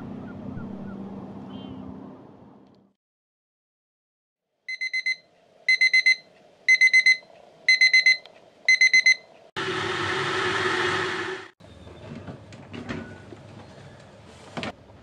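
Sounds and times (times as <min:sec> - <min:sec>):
alarm clock beeping: 0:04.7 - 0:09.2.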